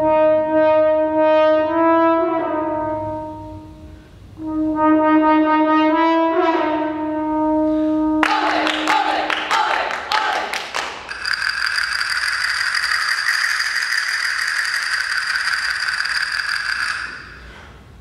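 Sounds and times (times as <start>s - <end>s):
brass chord: 0.0s - 3.7s, 4.4s - 8.8s
castanets clacking: 11.0s - 17.5s.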